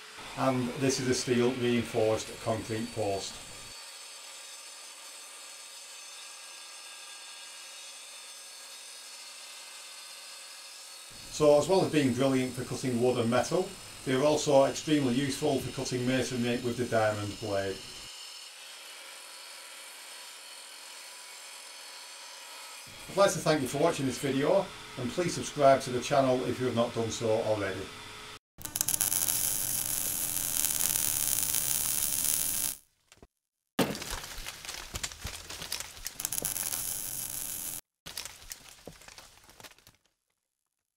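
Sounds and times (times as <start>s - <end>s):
saw grinding through concrete: 11.1s - 18.6s
crackling: 28.6s - 32.8s, 33.9s - 40.0s.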